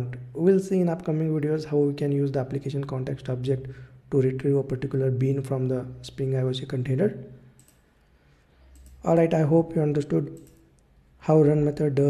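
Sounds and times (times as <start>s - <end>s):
man talking: 0.0s - 7.2s, 9.0s - 10.4s, 11.2s - 12.0s
computer mouse clicking: 7.6s - 7.9s, 8.6s - 9.1s, 10.3s - 10.8s.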